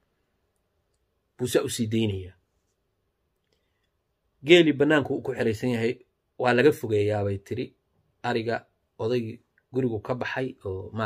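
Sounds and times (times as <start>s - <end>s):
man speaking: 1.4s - 2.4s, 4.4s - 11.0s.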